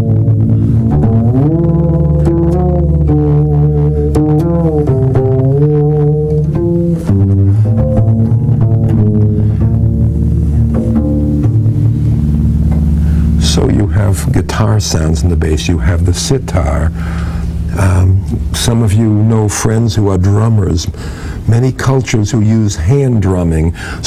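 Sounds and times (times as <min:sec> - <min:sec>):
double bass plucked: 0:00.0 - 0:24.0.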